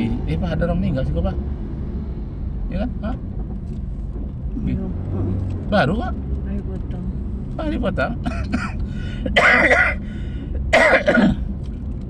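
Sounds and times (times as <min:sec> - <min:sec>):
car engine and road rumble: 0:00.0 - 0:12.0
man coughing: 0:08.2 - 0:11.4.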